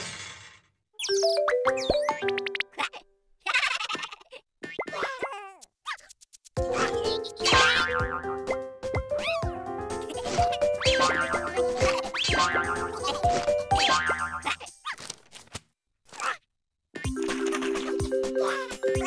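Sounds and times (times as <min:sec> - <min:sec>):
bouncy cartoon music: 0:01.0 - 0:04.0, 0:04.7 - 0:14.8, 0:17.0 - 0:19.0.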